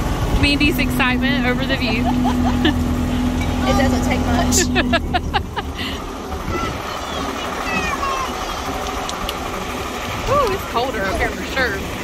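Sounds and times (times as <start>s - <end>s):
tractor engine running: 0.0s - 12.0s.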